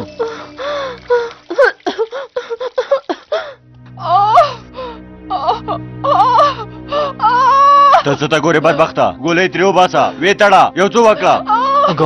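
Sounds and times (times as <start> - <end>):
low drone of dramatic music: 0.0 - 1.6, 3.4 - 12.0
wailing lamenting voice: 4.0 - 4.6, 5.3 - 9.0, 11.0 - 12.0.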